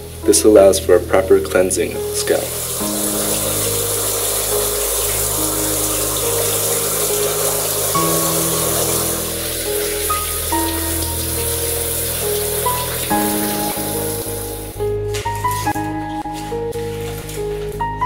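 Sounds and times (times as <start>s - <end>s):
slow held-note music: 0.0s - 18.0s
shower spray splashing: 1.4s - 17.5s.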